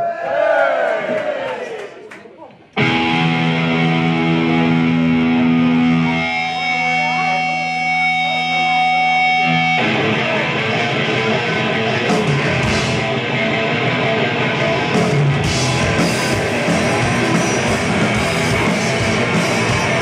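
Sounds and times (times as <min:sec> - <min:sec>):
electric guitar chords: 0:02.8 - 0:20.0
rock band playing: 0:02.8 - 0:20.0.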